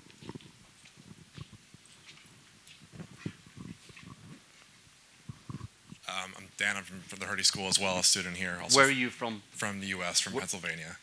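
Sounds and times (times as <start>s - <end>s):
microphone handling noise: 0.0s - 6.1s.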